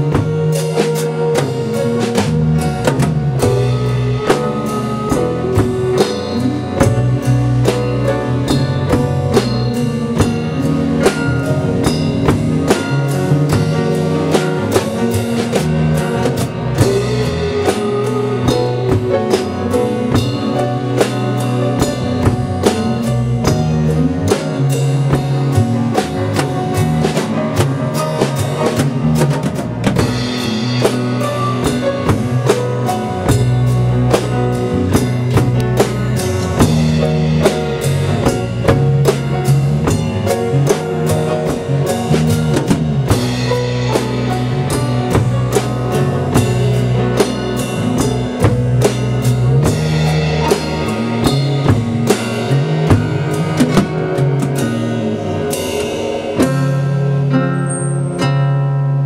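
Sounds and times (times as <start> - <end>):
walking bass line: 0.0 - 57.3
drum-kit beat: 0.0 - 57.4
live band playing a song: 0.0 - 59.0.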